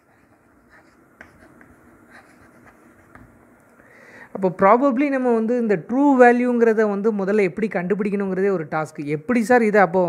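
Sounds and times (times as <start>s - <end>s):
chalk scratching on blackboard: 0.0s - 3.2s
chalk taps: 0.0s - 3.4s.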